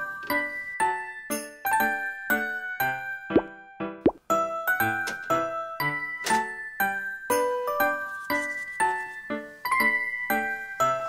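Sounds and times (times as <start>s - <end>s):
bell-like children's music: 0.0s - 11.0s.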